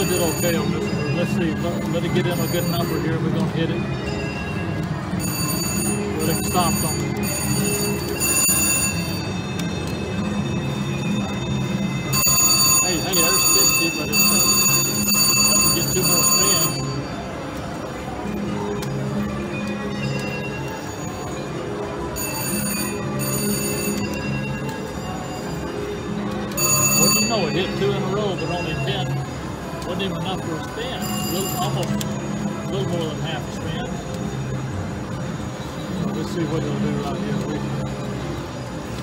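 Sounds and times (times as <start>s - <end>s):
slot machine chimes and ringing: 0.0s - 18.5s, 19.2s - 38.5s
casino machine music: 0.0s - 39.0s.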